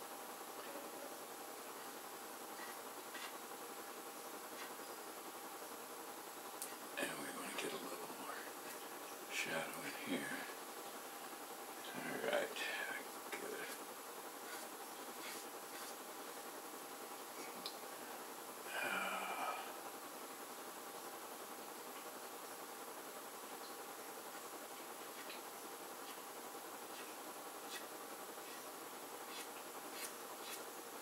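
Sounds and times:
room hiss: 0.0 - 31.0
pastel stick scratching paper: 2.5 - 3.4, 14.4 - 16.0, 26.9 - 30.8
person muttering: 18.7 - 19.8.

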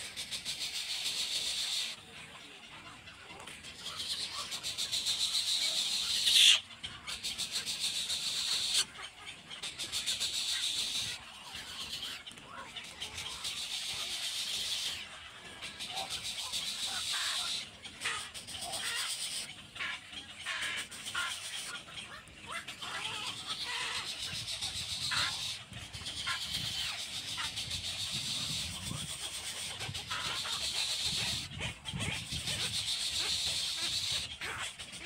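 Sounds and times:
chicks ticking begging calls: 0.1 - 35.0.

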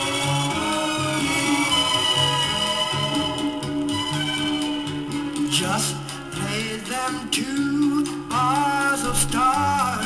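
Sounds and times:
pop song with band: 0.0 - 10.0.

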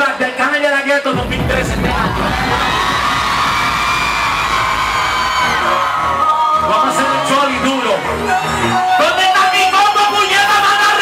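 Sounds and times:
bass-heavy beat: 1.1 - 7.3
crowd shouting: 2.0 - 9.2.

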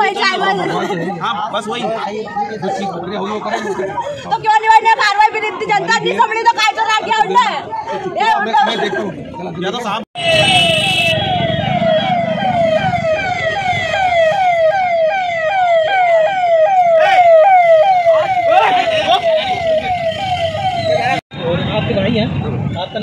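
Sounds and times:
road traffic noise: 0.0 - 23.0
siren whooping: 10.2 - 21.2.

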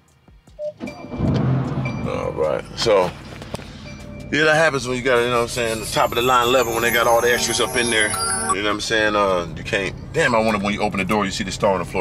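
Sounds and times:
music: 0.0 - 8.6.

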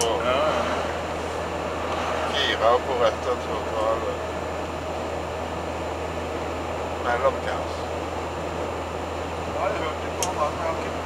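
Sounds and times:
engine drone inside vehicle: 0.0 - 11.0
road noise: 0.0 - 11.0.

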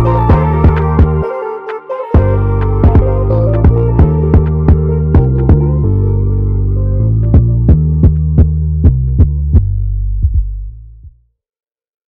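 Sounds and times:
deep sustained bass: 0.0 - 1.3, 2.2 - 11.2.

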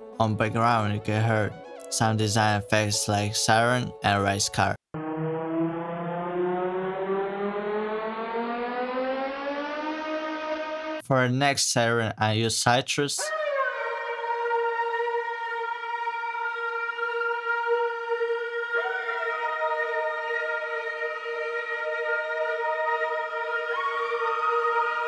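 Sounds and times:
synth siren tone gliding: 4.9 - 11.0, 13.3 - 25.0
higher sliding synth notes: 5.0 - 11.0.

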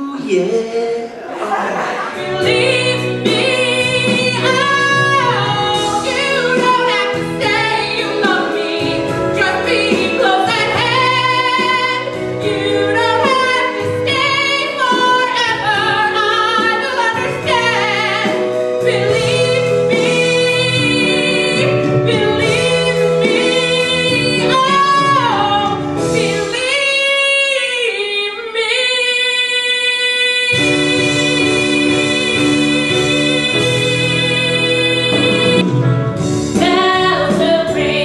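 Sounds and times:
band accompaniment: 0.0 - 38.0
women singing pop song: 2.2 - 35.6, 36.6 - 38.0.

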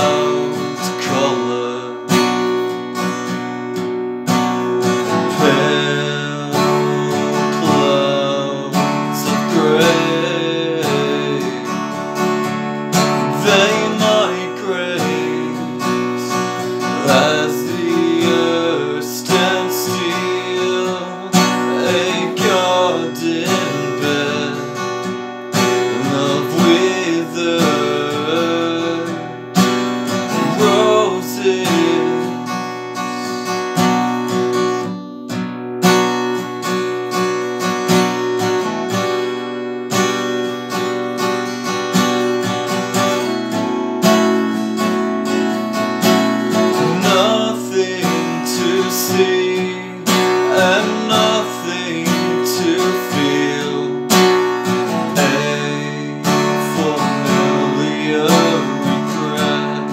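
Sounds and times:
acoustic guitar: 0.0 - 59.9.

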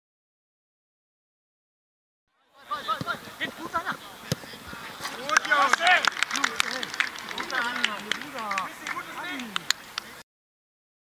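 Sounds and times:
men shouting: 5.1 - 9.6.

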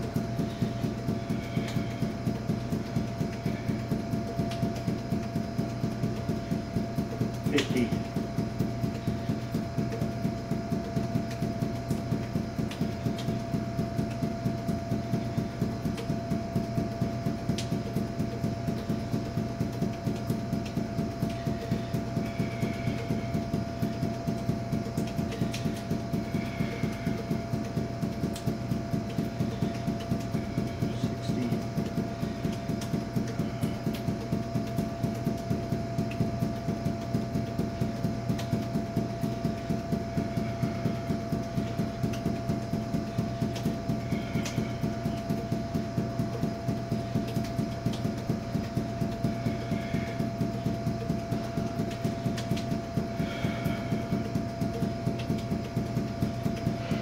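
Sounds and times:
steady hum: 0.0 - 57.0.

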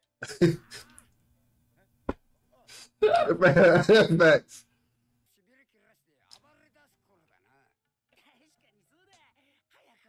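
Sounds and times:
man clearing his throat: 0.2 - 0.9, 3.0 - 4.4.

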